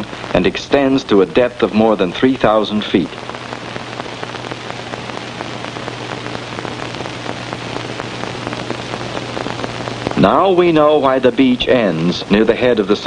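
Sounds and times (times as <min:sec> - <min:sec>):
crackling hiss: 0:00.0 - 0:13.0
low steady hum: 0:00.0 - 0:13.0.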